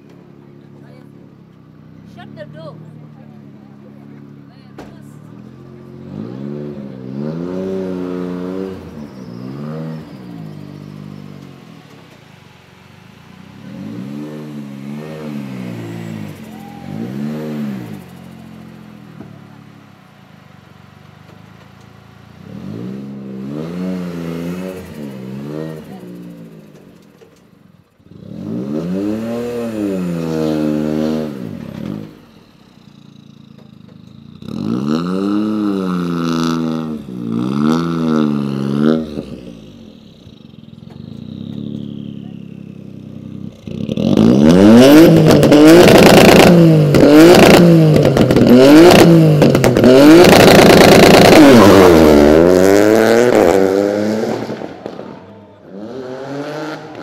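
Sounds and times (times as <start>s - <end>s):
car engine idling: 0.0s - 7.3s, 8.1s - 28.3s, 29.6s - 34.6s, 35.4s - 55.9s
car engine revving: 0.0s - 57.0s.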